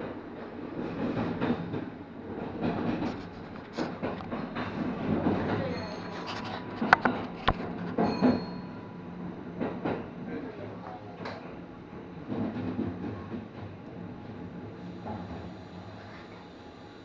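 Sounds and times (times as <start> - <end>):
electric train running hum: 0.0 - 17.0.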